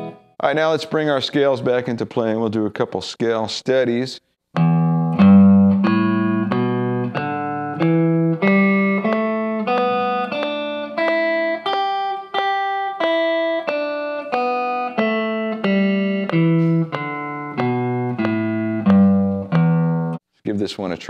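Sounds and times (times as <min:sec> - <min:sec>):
electric guitar picking scale: 0:04.6 - 0:20.2.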